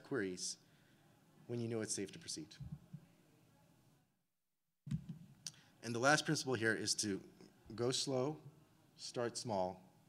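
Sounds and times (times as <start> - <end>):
man speaking: 0.0 - 0.6, 1.5 - 2.6, 5.8 - 9.9.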